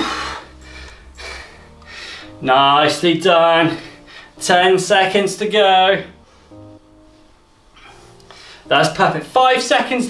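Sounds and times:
man breathing out hard: 0.0 - 2.4
background music: 0.0 - 10.0.

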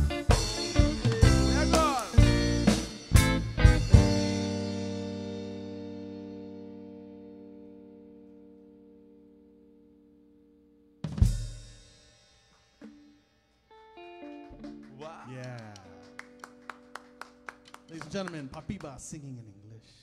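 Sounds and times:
drums and cymbals: 0.0 - 5.4, 11.1 - 13.2
full-band hit: 0.0 - 6.7
live band closing chord: 0.0 - 8.4, 13.8 - 19.0
soft guitar notes: 0.0 - 11.0, 12.8 - 18.9.

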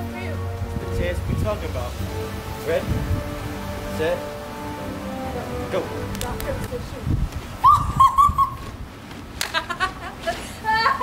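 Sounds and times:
quick high yelps: 7.6 - 8.7.

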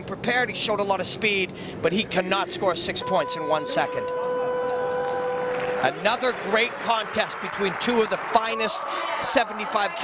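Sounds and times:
electronic buzzer tone: 3.0 - 5.8.

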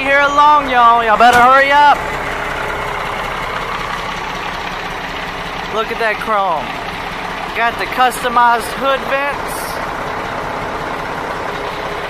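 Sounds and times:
truck diesel engine idling: 0.0 - 12.0.

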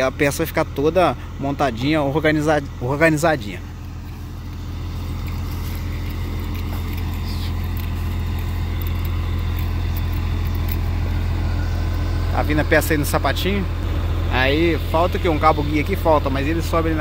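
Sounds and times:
diesel engine droning: 0.0 - 17.0.

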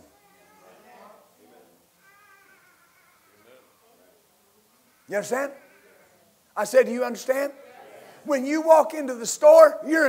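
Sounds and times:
faint high-pitched voice: 0.0 - 6.4.

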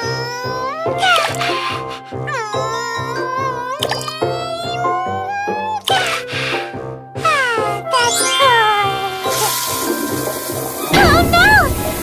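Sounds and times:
high cartoon voice straining: 0.0 - 6.5, 7.2 - 9.5.

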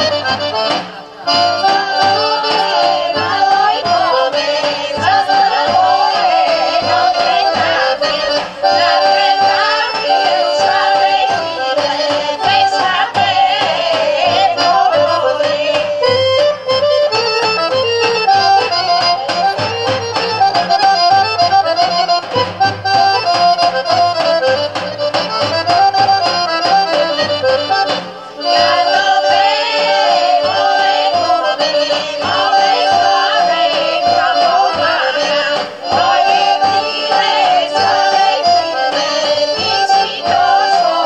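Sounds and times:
women singing together: 0.0 - 16.6, 28.4 - 41.0
accordion: 0.0 - 41.0
large drum beating: 0.2 - 16.2.

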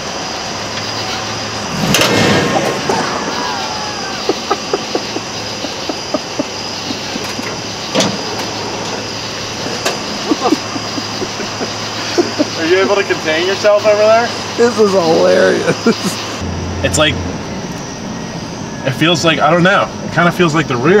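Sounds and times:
burst of noise with sliding whine: 0.0 - 5.7
truck engine idling: 0.0 - 21.0
sharp drivetrain clunk: 0.7 - 3.3, 7.1 - 10.2.

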